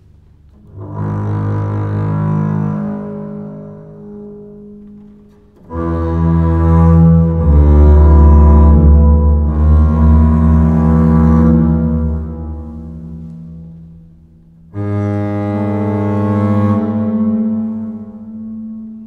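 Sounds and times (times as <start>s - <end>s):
double bass notes: 0.0s - 19.0s.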